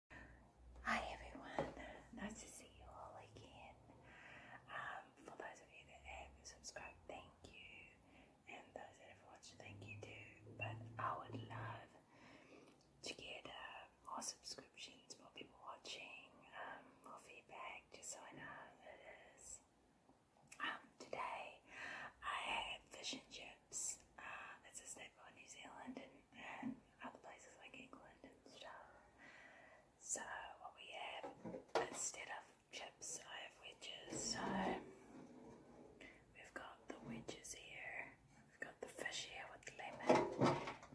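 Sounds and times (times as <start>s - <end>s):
woman whispering: 0.2s - 3.9s, 4.6s - 12.0s, 13.0s - 19.7s, 20.5s - 29.1s, 30.0s - 34.9s, 36.0s - 40.2s.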